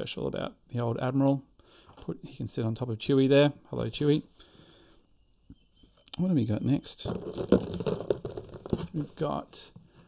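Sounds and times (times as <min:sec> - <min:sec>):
rustling and crinkling: 0:06.8 - 0:10.0.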